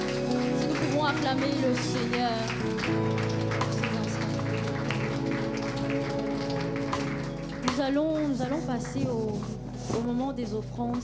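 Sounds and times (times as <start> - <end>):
congregation clapping: 0.0 - 9.5
music of held chords: 0.0 - 11.0.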